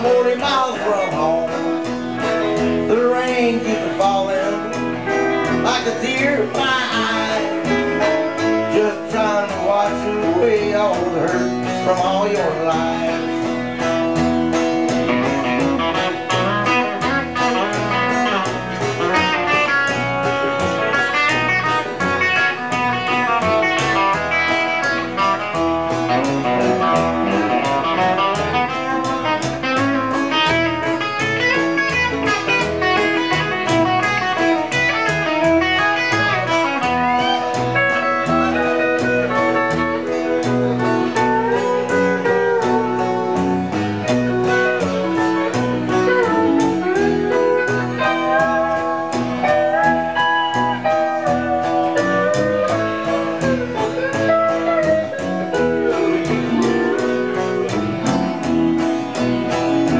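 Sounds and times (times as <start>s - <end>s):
fast guitar lead: 0.0s - 59.9s
upright bass: 0.0s - 59.9s.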